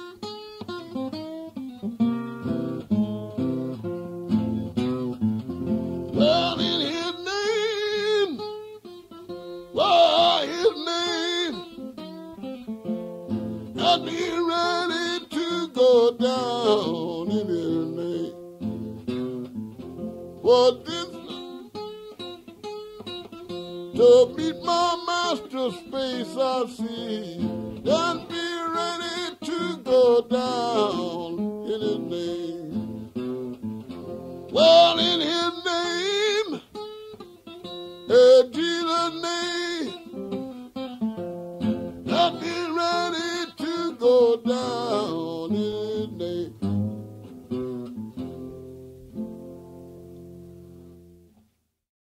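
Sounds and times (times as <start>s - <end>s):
fingerpicked acoustic blues guitar: 0.0s - 51.6s
man singing: 6.1s - 8.5s, 9.6s - 12.0s, 13.7s - 18.5s, 20.4s - 21.7s, 23.6s - 33.7s, 34.5s - 36.8s, 38.0s - 40.2s, 42.0s - 46.8s.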